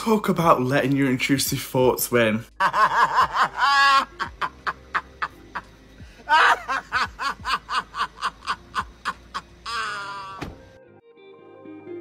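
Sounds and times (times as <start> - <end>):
man laughing hard: 2.5 - 10.4.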